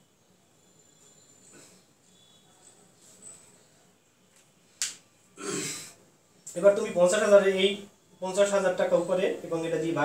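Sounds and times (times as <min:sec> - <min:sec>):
man speaking: 0:06.6 - 0:10.0.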